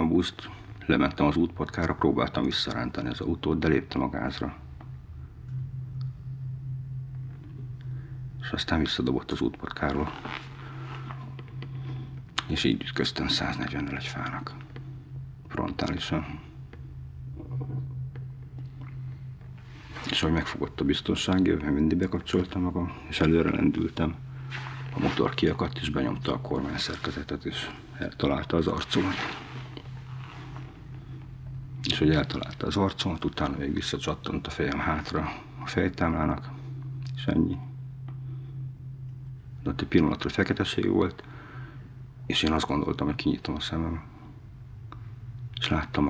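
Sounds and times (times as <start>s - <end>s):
man talking: 0.0s - 4.7s, 8.4s - 10.4s, 12.4s - 14.7s, 15.5s - 16.6s, 20.0s - 29.8s, 31.8s - 37.7s, 39.6s - 41.2s, 42.3s - 44.2s, 45.6s - 46.0s
steady low hum: 0.0s - 46.0s.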